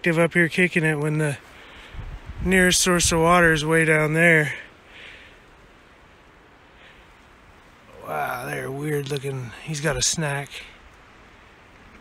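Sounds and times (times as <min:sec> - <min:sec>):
rain: 0:00.0 - 0:12.0
wind: 0:00.0 - 0:12.0.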